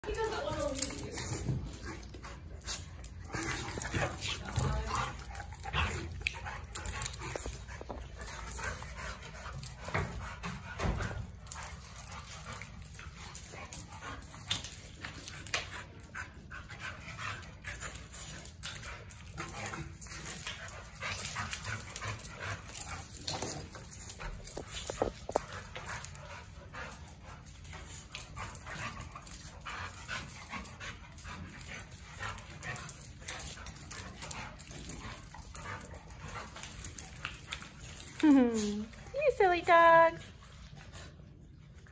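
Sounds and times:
dogs scuffling on concrete: 0:00.0 - 0:41.9.

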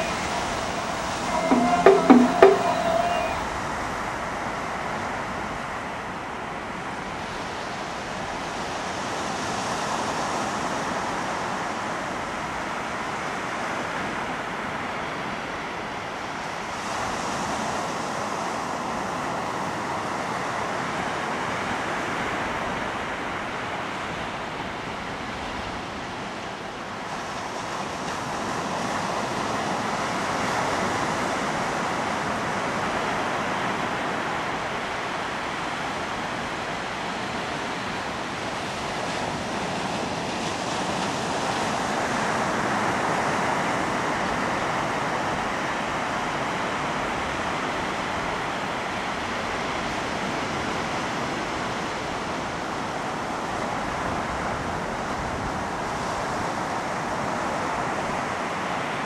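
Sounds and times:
ocean surf washing on beach: 0:00.0 - 0:03.4.

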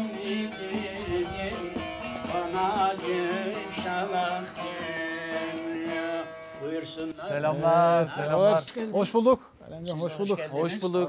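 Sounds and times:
long-necked lute playing: 0:00.0 - 0:08.5
man singing folk song: 0:00.0 - 0:09.2.

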